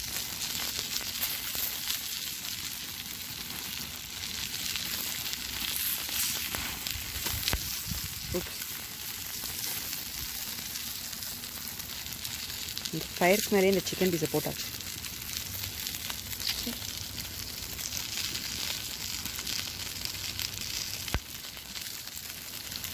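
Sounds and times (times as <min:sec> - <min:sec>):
chicken sizzling on a grill: 0:00.0 - 0:22.9
fire crackling: 0:00.0 - 0:22.9.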